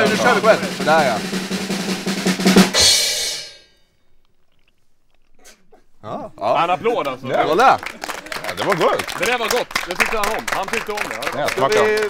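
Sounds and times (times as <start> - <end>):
snare drum roll: 0.0 - 3.5
crash cymbal hit: 2.6 - 3.8.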